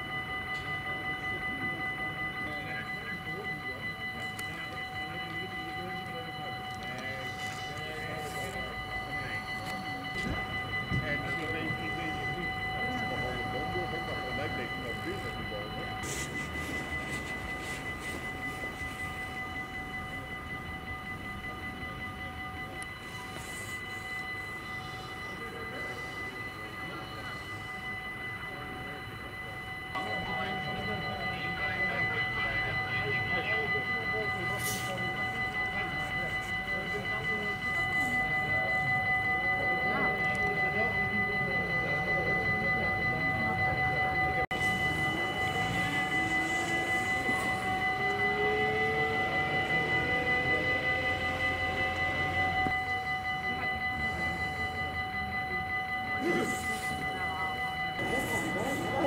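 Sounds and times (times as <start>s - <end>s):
level crossing warning bell: 0.0s - 59.0s
murmur of distant voices: 0.0s - 59.0s.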